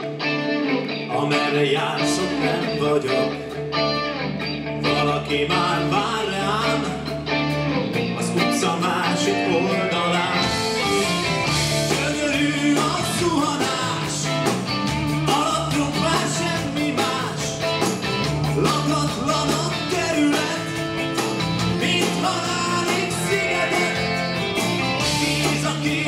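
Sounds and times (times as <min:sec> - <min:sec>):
bass guitar: 0:00.0 - 0:26.0
drums: 0:00.0 - 0:26.0
electric guitars: 0:00.0 - 0:26.0
rock band playing: 0:00.0 - 0:26.0.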